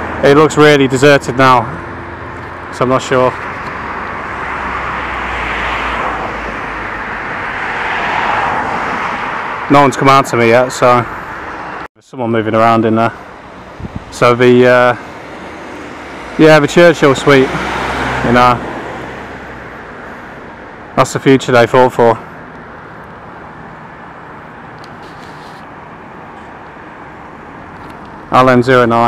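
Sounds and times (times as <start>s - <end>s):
distant vehicle hum: 0.0s - 29.0s.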